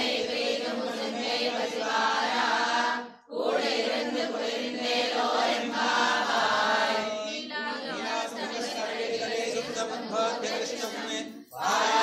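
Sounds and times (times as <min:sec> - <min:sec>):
group chanting a hymn: 0:00.0 - 0:12.0.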